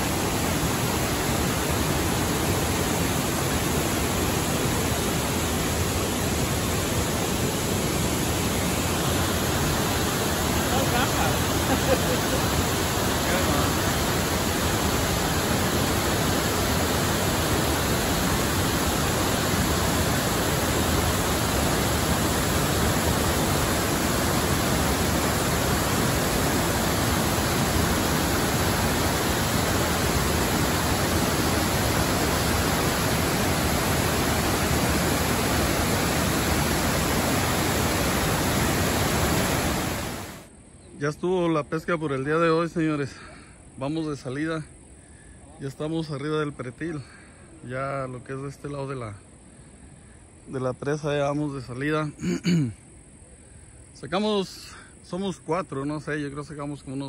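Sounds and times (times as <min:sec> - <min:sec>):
rushing falling water: 0:00.0 - 0:40.5.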